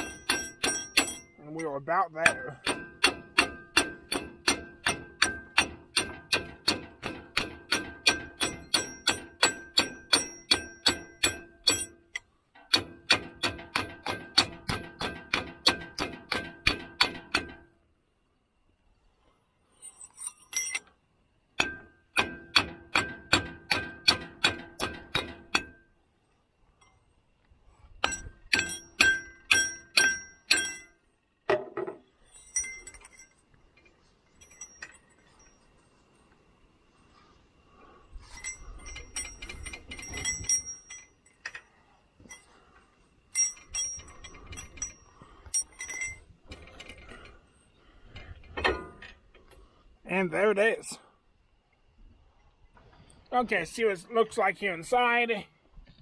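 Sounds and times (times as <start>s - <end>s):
ringing metal clanks: 0.0s - 17.8s, 19.8s - 20.9s, 21.6s - 26.0s, 28.0s - 36.0s, 38.2s - 47.4s.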